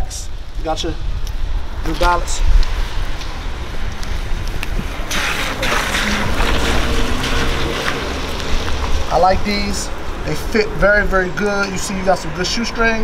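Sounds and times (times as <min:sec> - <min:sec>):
wind noise on microphone: 0:00.0 - 0:13.0.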